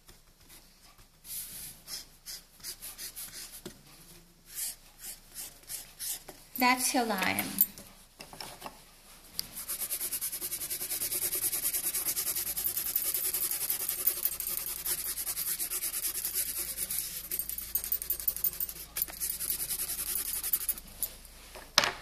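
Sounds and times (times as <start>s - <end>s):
pencil scratching on paper: 1.9s - 3.6s, 4.5s - 6.2s, 9.6s - 20.9s.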